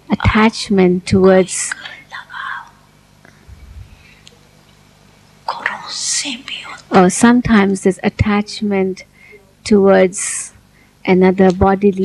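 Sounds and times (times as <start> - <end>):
woman speaking: 0.1 - 2.2, 5.5 - 9.1, 9.7 - 12.0.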